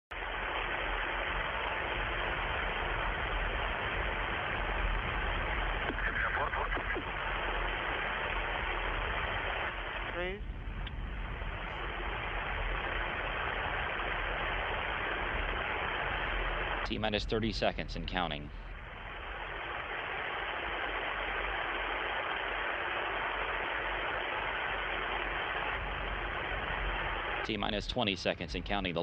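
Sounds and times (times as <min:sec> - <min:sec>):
radio feed hiss: 0:00.1 - 0:29.0
faint voice: 0:05.9 - 0:07.2, 0:10.1 - 0:10.4.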